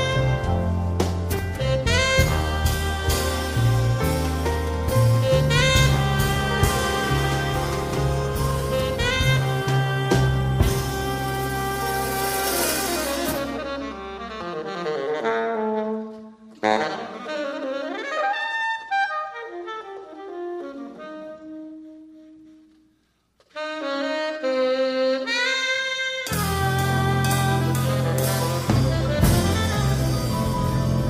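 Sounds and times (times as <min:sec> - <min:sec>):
jazz band playing: 0:00.0 - 0:22.7, 0:23.4 - 0:31.0
tenor saxophone solo: 0:00.0 - 0:22.8, 0:23.4 - 0:31.0.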